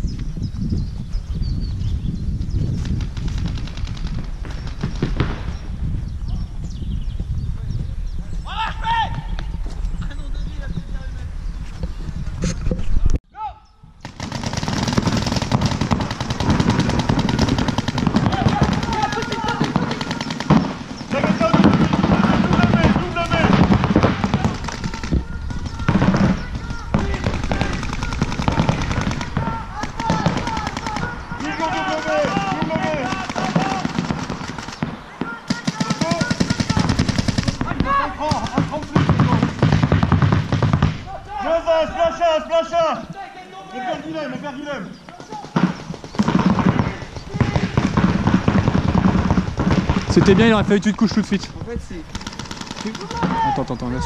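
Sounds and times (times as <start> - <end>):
paintball markers firing: 14.0 - 41.0, 45.1 - 51.2, 52.1 - 53.6
players shouting: 17.5 - 39.6, 46.3 - 48.1, 52.3 - 54.0.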